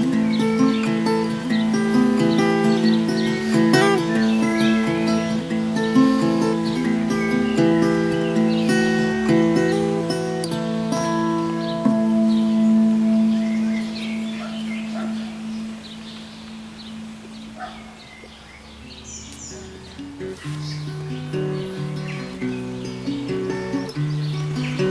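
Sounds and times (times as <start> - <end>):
birds chirping: 0.0 - 24.9
tenor guitar chord ringing: 19.5 - 24.9.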